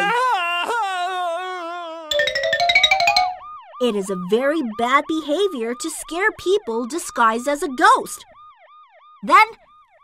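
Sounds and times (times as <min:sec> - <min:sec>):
bright notes stepping upward: 0:02.1 - 0:03.6.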